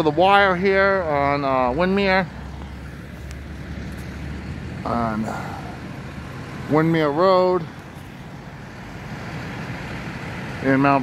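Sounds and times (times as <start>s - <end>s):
trucks idling: 0.0s - 11.0s.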